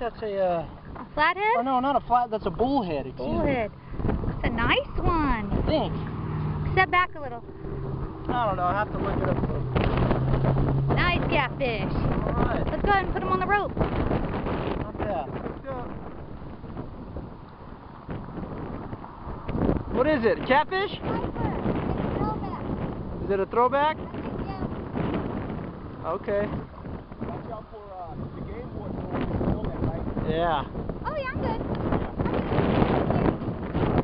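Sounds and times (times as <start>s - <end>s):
wind gusting on microphone: 0.0s - 34.0s.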